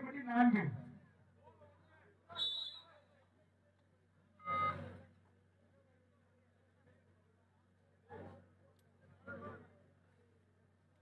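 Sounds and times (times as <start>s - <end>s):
short beep: 4.4s - 4.8s.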